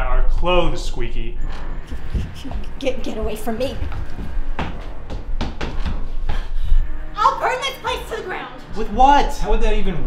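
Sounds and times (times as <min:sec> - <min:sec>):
steady low rumble: 0:00.0 - 0:07.1.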